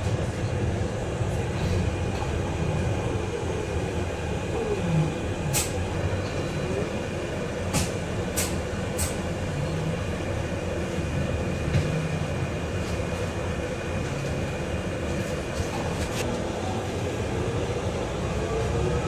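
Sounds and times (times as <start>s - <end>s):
bus cabin low rumble: 0.0s - 19.0s.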